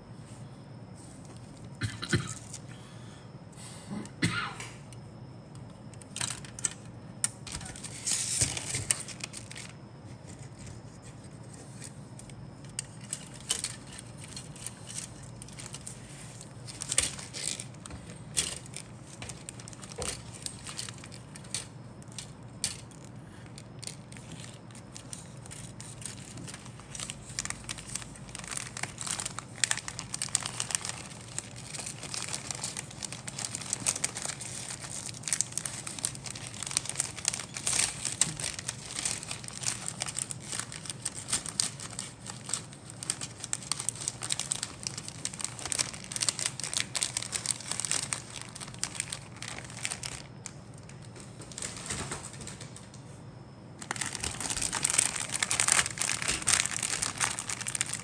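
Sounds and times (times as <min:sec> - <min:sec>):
faint low hum: 0:00.0 - 0:58.0
plastic bag crinkling: 0:05.7 - 0:52.8, 0:53.8 - 0:58.0.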